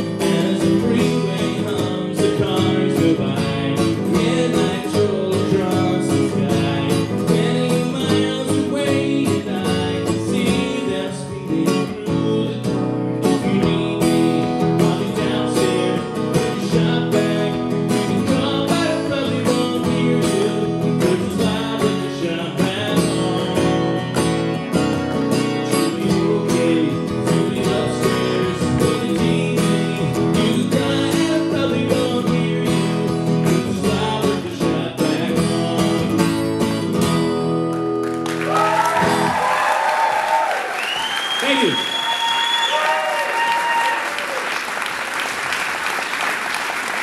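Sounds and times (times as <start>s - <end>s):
acoustic guitar strumming: 0.0s - 39.5s.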